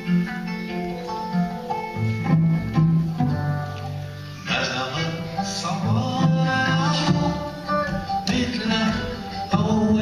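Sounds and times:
low string notes: 0.0s - 10.0s
oud plucked melody: 0.0s - 10.0s.

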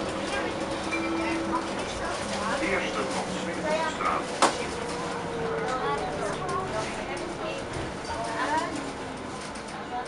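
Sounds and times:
bus cabin running noise: 0.0s - 10.0s
passengers talking: 0.0s - 10.0s.

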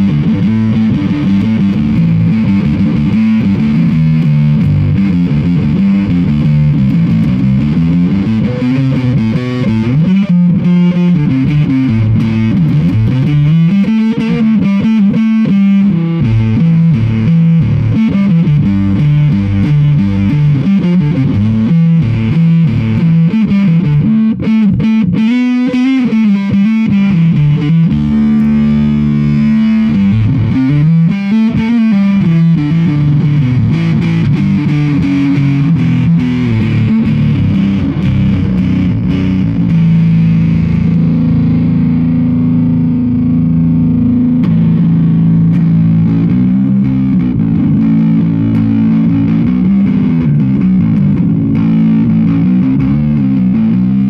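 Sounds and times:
distorted fuzz guitar riffing: 0.0s - 54.0s.

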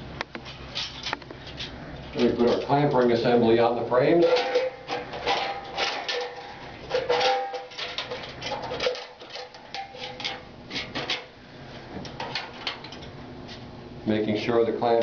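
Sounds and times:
metal clicks knocks and scrapes: 4.2s - 11.3s.

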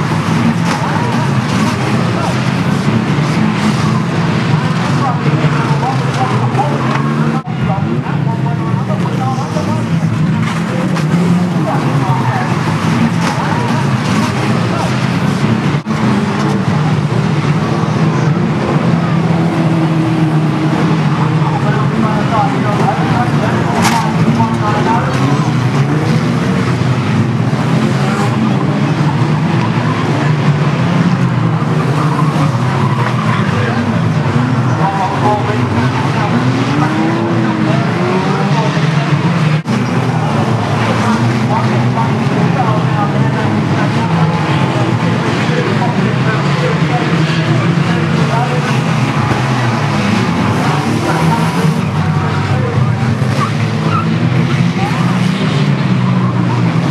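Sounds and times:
racing car engines revving: 0.0s - 56.9s
tyres skidding: 0.0s - 56.9s.

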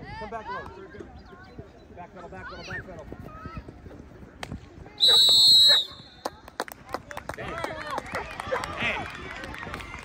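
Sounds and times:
referee's whistle blast: 5.0s - 6.2s.

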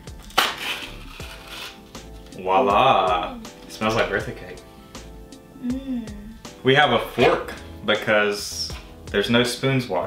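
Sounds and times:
soft background music: 0.0s - 10.0s
seal peeling off with crinkly tearing: 0.2s - 2.3s.

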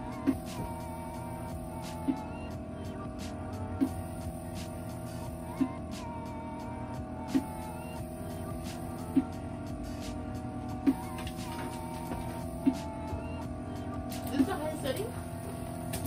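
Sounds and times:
background music: 0.0s - 16.0s
vacuum machine running: 0.0s - 16.0s.

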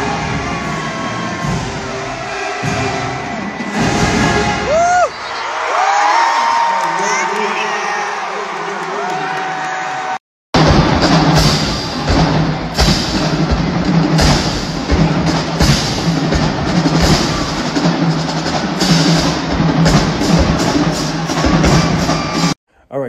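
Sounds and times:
snare and bass drums cadence: 10.6s - 22.6s.

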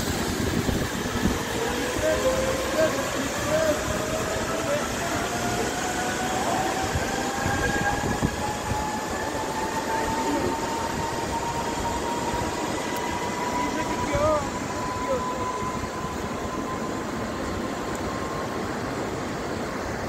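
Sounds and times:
steady rushing noise: 0.0s - 20.0s
zipline pulleys whining on cable: 0.0s - 20.0s.

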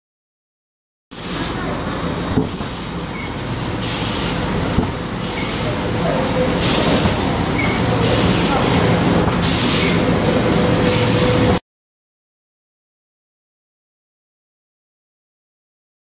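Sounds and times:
machinery rumble and hum: 1.2s - 11.6s
cutting units hissing: 3.8s - 11.4s.

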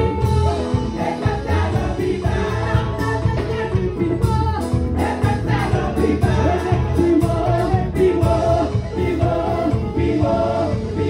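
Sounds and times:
women's choir singing gospel: 0.0s - 11.0s.

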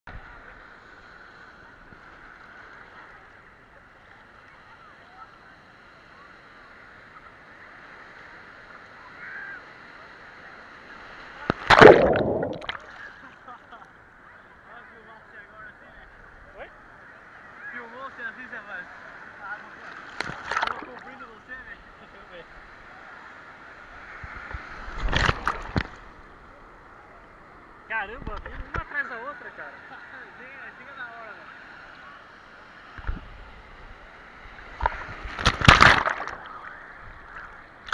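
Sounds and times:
sea surf: 0.1s - 13.5s, 14.3s - 37.9s
voices of people: 0.3s - 11.7s, 12.6s - 24.7s
splash and underwater gurgle: 11.5s - 13.0s, 20.1s - 21.0s, 24.8s - 26.0s, 34.7s - 37.9s.

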